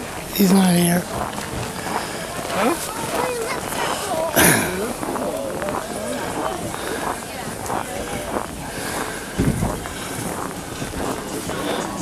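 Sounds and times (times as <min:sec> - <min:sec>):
faint voices: 0:00.0 - 0:12.0
wind rumble on microphone: 0:07.5 - 0:11.7.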